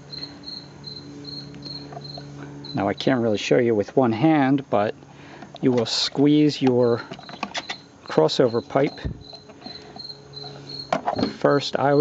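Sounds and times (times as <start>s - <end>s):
insect chirping: 0.0s - 3.4s, 6.1s - 12.0s.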